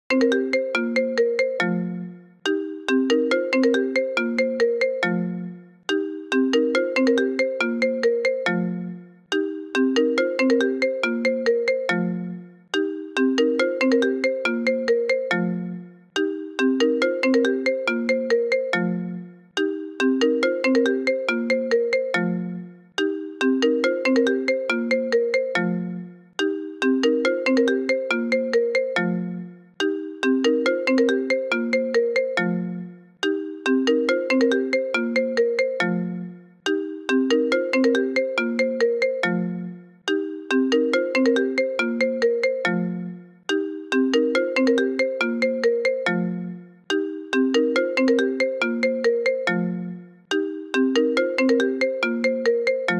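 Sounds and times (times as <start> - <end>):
phone ringtone melody: 0.1 - 52.9.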